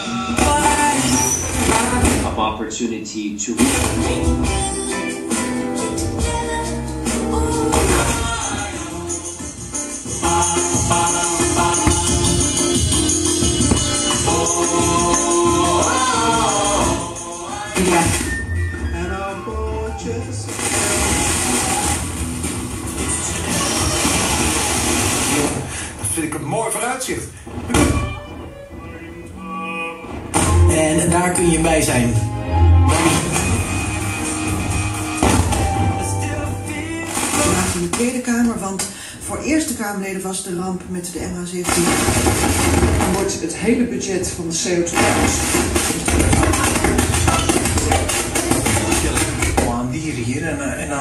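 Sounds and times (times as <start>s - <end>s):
radio music through loudspeakers: 0.0s - 4.6s, 17.4s - 28.2s, 30.3s - 51.0s
radio talk station: 1.6s - 4.5s, 30.5s - 33.6s, 39.2s - 51.0s
radio static hiss: 20.5s - 28.1s
heavy steady bass: 30.4s - 37.8s.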